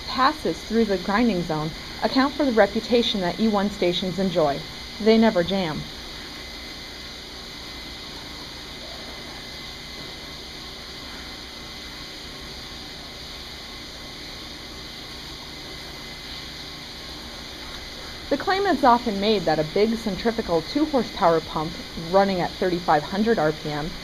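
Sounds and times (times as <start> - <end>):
grinder pump running: 0.0 - 24.0.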